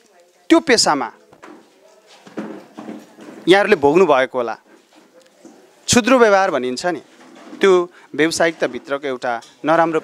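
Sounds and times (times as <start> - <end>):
man talking: 3.5 - 4.6, 7.6 - 10.0.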